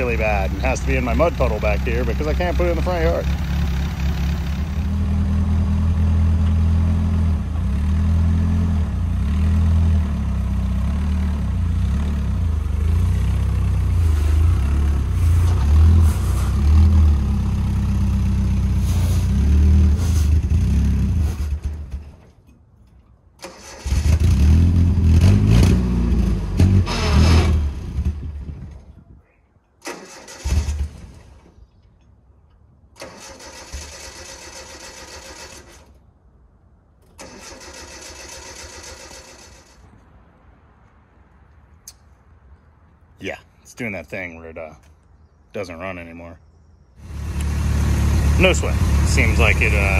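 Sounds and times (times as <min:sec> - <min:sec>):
car engine running: 0:00.0 - 0:06.5, 0:47.0 - 0:49.9
engine cranking: 0:21.2 - 0:24.6, 0:29.8 - 0:31.6, 0:33.0 - 0:36.0, 0:37.0 - 0:39.9.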